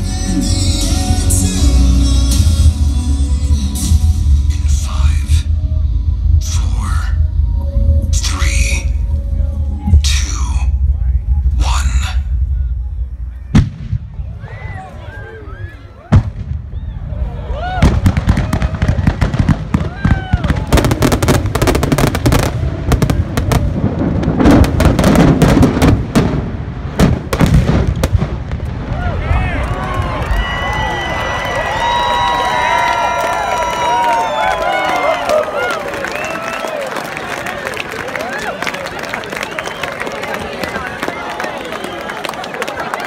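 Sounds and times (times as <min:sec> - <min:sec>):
crowd cheering and whistling: 0:12.4 - 0:23.6, 0:28.8 - 0:43.0
fireworks booms and crackling: 0:13.5 - 0:14.5, 0:16.0 - 0:30.3.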